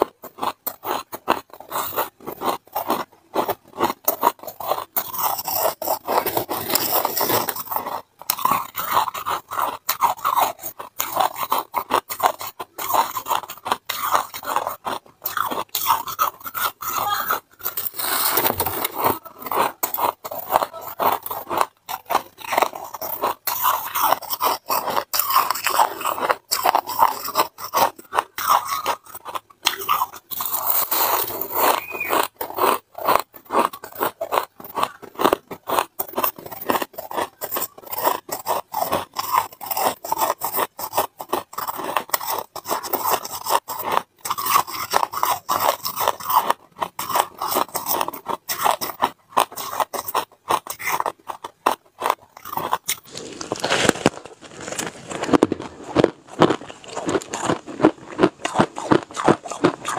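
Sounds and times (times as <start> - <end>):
ice being chewed: 0.0 - 59.9.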